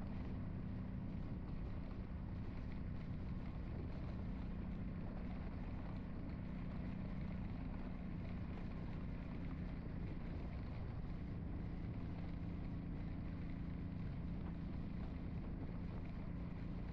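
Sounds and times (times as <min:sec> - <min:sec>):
vehicle engine running: 0:00.0 - 0:16.9.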